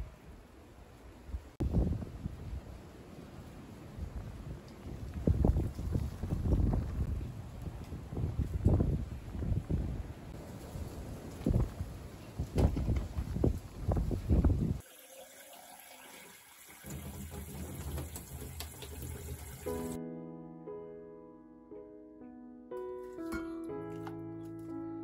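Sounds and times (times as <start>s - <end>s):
wind buffeting microphone: 1.1s - 14.8s
music: 19.6s - 25.0s.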